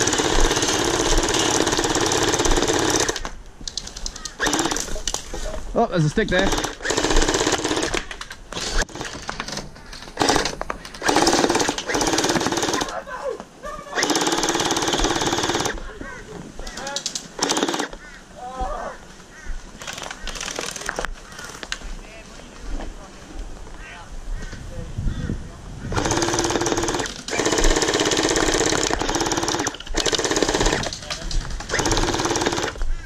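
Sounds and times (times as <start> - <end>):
gel blaster firing bursts: 4.4 - 4.9, 6.2 - 8.0, 10.2 - 12.9, 17.4 - 18.0, 25.9 - 30.9, 31.7 - 32.8.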